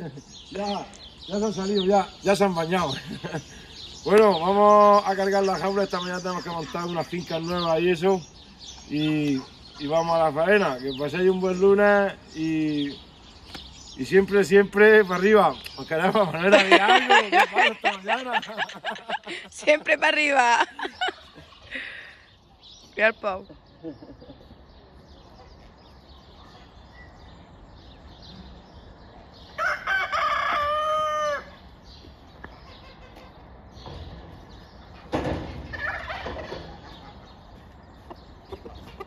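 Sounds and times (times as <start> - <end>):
farmyard bird calls: 0.0 - 39.0
turkey gobbling: 35.5 - 37.3.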